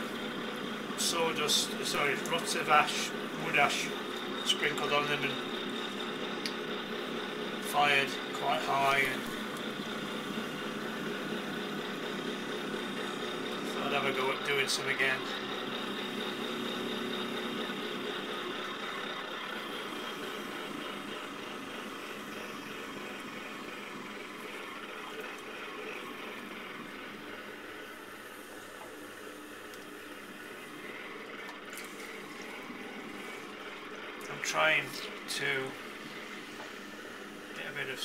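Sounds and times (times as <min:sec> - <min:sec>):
potter's wheel humming: 0:00.0 - 0:38.0.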